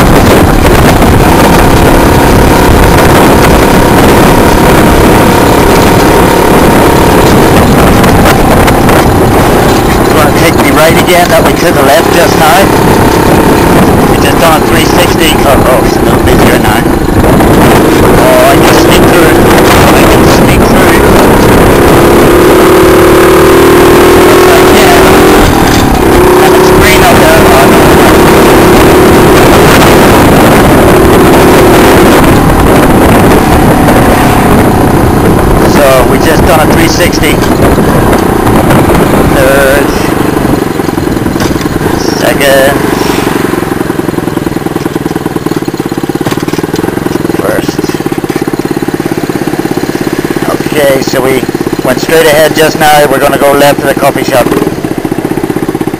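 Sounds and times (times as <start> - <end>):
low rumbling noise: 0.0 - 55.9
small motorcycle engine running: 0.0 - 55.9.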